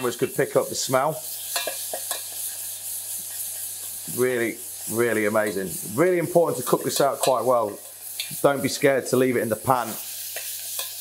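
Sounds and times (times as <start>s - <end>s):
paste sizzling in hot oil: 0.0s - 11.0s.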